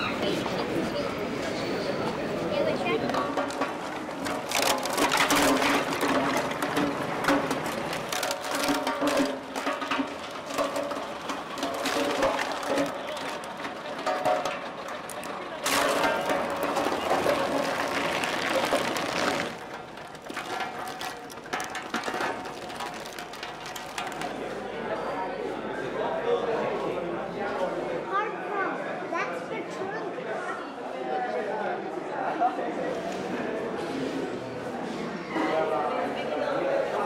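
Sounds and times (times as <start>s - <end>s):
crowd voices: 0.0s - 37.0s
road roller crushing bones: 2.4s - 24.9s.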